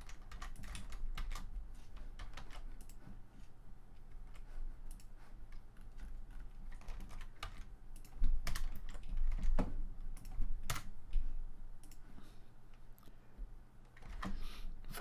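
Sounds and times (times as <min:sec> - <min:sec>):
computer keyboard clicking: 0:00.0 - 0:01.5, 0:02.1 - 0:03.0, 0:04.0 - 0:10.9.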